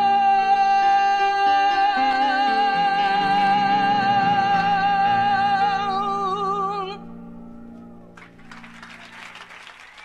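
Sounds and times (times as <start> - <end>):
audience applauding: 8.2 - 10.0.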